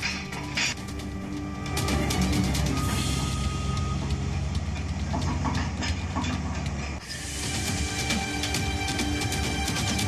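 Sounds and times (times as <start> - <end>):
metal clanks: 0.0 - 10.0
diesel engine droning: 0.8 - 10.0.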